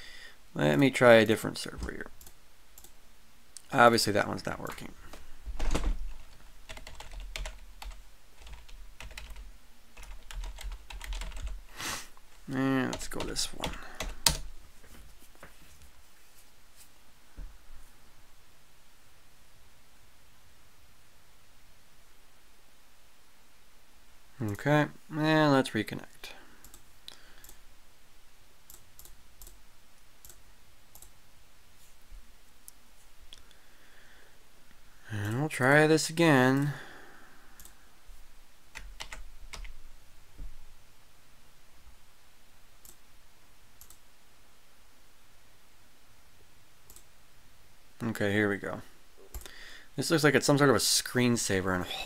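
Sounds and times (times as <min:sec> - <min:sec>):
computer mouse clicks: 0:01.8 - 0:03.0, 0:26.6 - 0:27.6, 0:28.7 - 0:29.6, 0:30.2 - 0:31.1, 0:37.6 - 0:37.8, 0:43.8 - 0:44.0, 0:46.9 - 0:47.1
typing on computer keyboard: 0:05.6 - 0:11.6, 0:12.9 - 0:14.5, 0:38.8 - 0:39.7.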